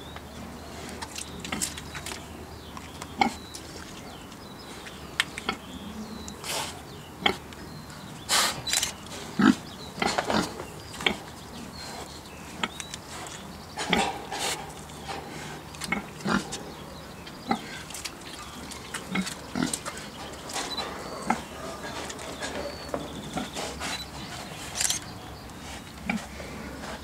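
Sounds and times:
pig grunting and snuffling: 0:03.1 - 0:27.0
pig sniffing: 0:08.3 - 0:09.6, 0:10.4 - 0:16.7, 0:17.5 - 0:27.0.

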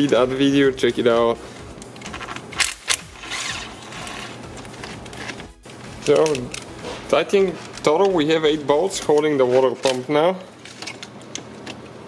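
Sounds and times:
hands moving rubber hoses: 0:01.4 - 0:12.0.

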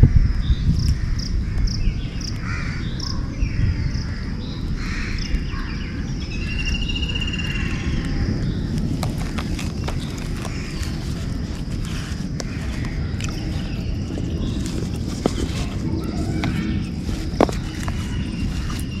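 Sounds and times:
steady low rumble: 0:00.0 - 0:19.0
birds chirping: 0:00.5 - 0:19.0
harsh bird calls: 0:00.5 - 0:19.0.

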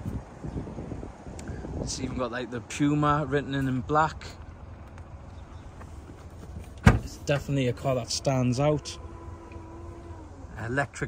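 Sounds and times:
wind buffeting microphone: 0:00.0 - 0:03.2.

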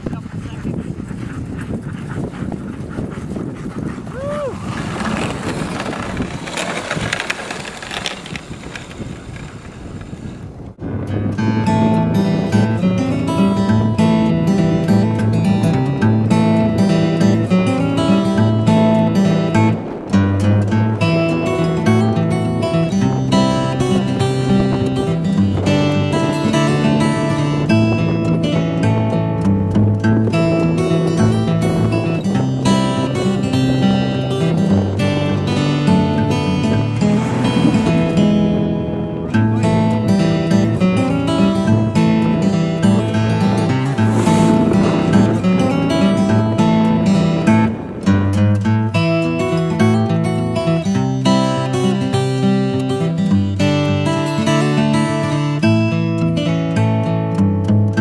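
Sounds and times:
dog sled moving over snow: 0:00.0 - 0:10.8, 0:11.5 - 0:56.6
wind rushing: 0:00.0 - 0:16.0, 0:16.6 - 0:50.8
acoustic guitar music: 0:10.8 - 0:58.0.

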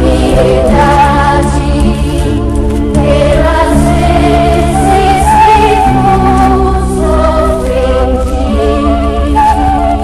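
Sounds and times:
low accompaniment: 0:00.0 - 0:10.0
voices singing sacred song: 0:00.0 - 0:10.0.

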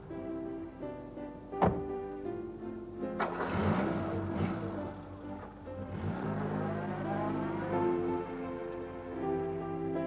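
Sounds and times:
background music: 0:00.0 - 0:10.0
knock: 0:01.6 - 0:01.8
car door slamming: 0:01.6 - 0:01.9
car engine starting: 0:03.1 - 0:09.5.

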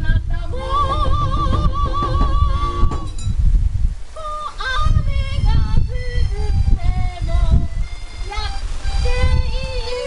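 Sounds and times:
wind buffeting microphone: 0:00.0 - 0:10.0
heavy rain: 0:07.6 - 0:09.1.

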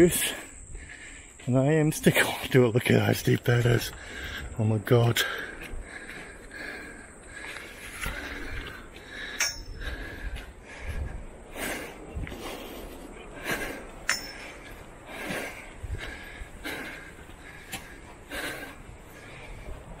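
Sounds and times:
man breathing hard and wheezing: 0:00.0 - 0:01.5, 0:03.9 - 0:04.6, 0:05.2 - 0:20.0
footsteps: 0:12.2 - 0:20.0.

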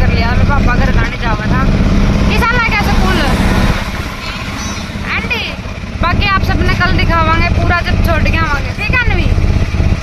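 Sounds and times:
auto-rickshaw engine chugging: 0:00.0 - 0:10.0.

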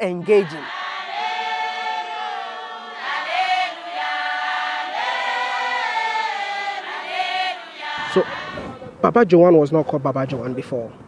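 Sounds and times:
congregation singing a hymn: 0:00.0 - 0:09.1.

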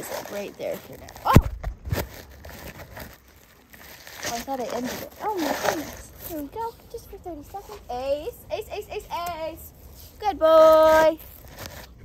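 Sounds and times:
rustling against microphone: 0:00.0 - 0:12.0.

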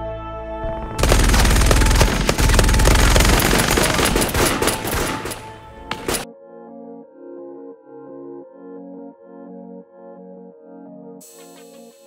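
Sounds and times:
deep rumble: 0:00.6 - 0:06.0
rapid gunfire: 0:00.7 - 0:06.3.

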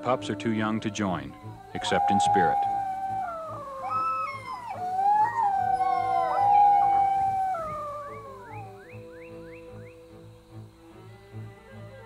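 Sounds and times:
wolf pups howling: 0:00.9 - 0:09.4.

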